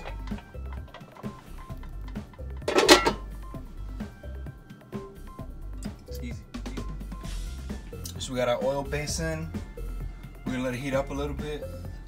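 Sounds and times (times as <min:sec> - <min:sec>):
background music with steady beat: 0:00.0 - 0:12.0
metal pot lid clattering: 0:02.0 - 0:03.4.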